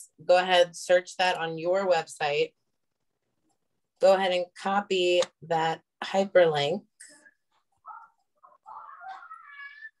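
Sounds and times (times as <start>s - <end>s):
child squealing: 7.9s - 10.0s.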